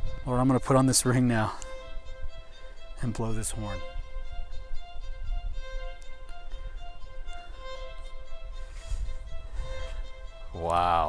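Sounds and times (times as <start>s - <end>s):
violin melody: 0.0s - 11.0s.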